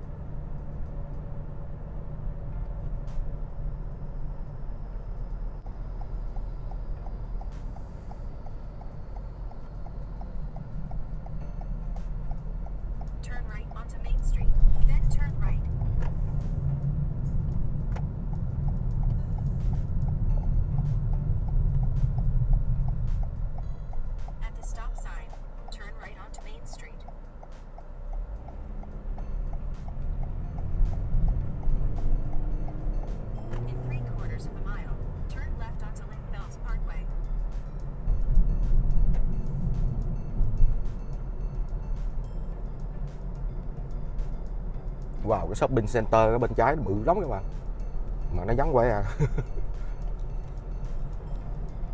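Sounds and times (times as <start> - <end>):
background music with light beat: 0.0 - 51.9
car road and engine rumble: 0.0 - 51.9
turn signal ticking: 0.0 - 51.9.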